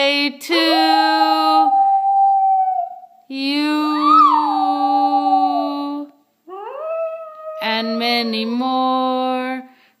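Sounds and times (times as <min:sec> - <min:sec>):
dog howling: 0:06.5 - 0:08.4.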